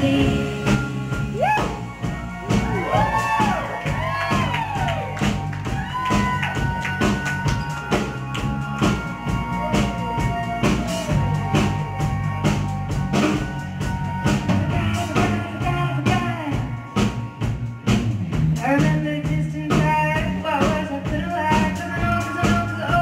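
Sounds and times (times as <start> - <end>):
drum kit steady beat: 0.0 - 23.0.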